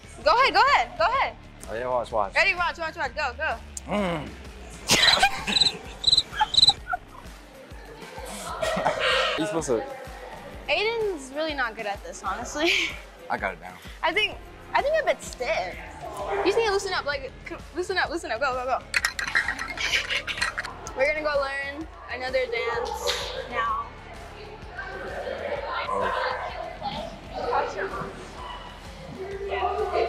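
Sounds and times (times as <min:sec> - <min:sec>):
music: 0:00.0 - 0:30.0
crickets chirping: 0:05.0 - 0:06.9.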